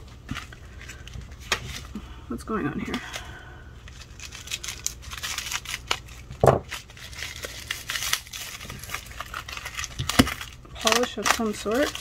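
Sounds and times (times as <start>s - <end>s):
plastic crinkling: 0.1s - 2.0s, 2.9s - 12.0s
scissors snipping plastic: 6.6s - 12.0s.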